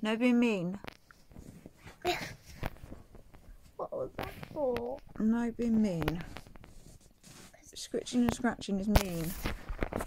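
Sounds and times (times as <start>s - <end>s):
rustling and handling noise: 0.4s - 10.0s.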